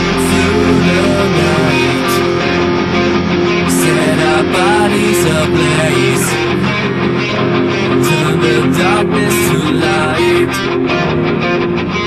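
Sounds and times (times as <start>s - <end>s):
metal guitars playing chords: 0.0s - 12.0s.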